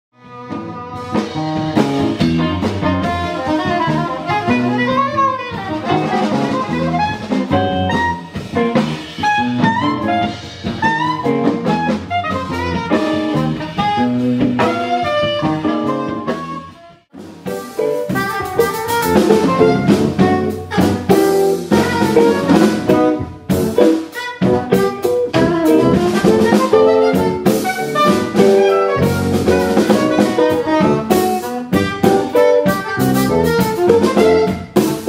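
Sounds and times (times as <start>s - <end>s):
drum kit: 0.2s - 35.0s
electric bass: 0.2s - 35.0s
soprano saxophone melody: 0.2s - 35.0s.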